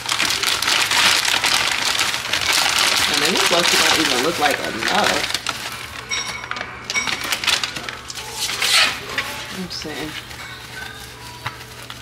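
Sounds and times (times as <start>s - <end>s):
artificial moss rustling: 0.0s - 12.0s.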